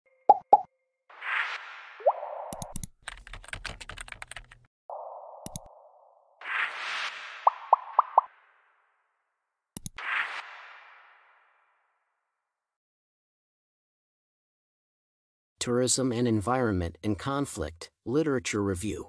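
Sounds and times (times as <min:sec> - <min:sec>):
keyboard typing clicks: 0:02.5 - 0:04.6, 0:05.4 - 0:05.7.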